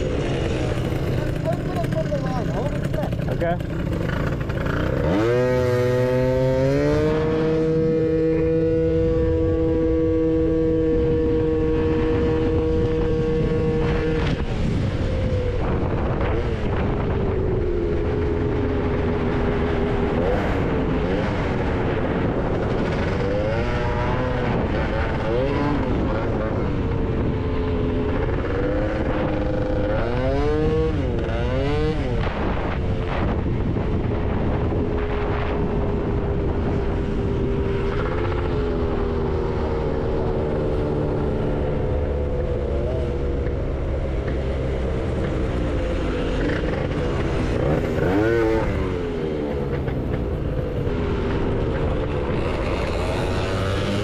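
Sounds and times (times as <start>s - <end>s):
riding noise rush: 0.0s - 30.5s
scooter engine revving: 0.0s - 54.0s.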